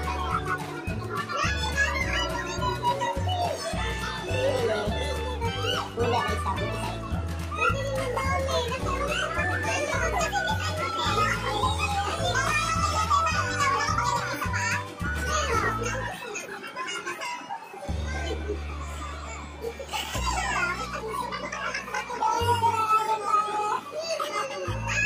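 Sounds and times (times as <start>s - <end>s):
high lively voices: 0.0s - 25.0s.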